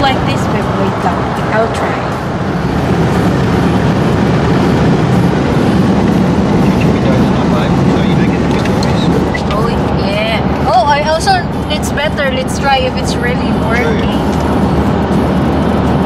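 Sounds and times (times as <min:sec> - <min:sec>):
tyre and road noise: 0:00.0 - 0:16.0
person speaking: 0:12.3 - 0:14.3.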